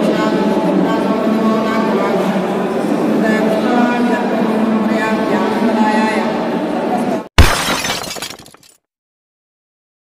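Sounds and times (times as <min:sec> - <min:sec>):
glass breaking crash effect: 0:07.4 - 0:08.8.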